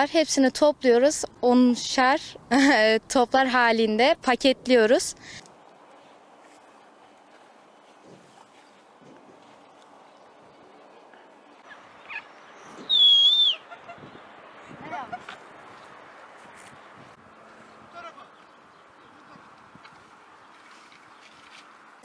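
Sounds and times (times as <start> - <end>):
open-air background: 0.0 - 22.0
loud whistled call: 11.7 - 14.0.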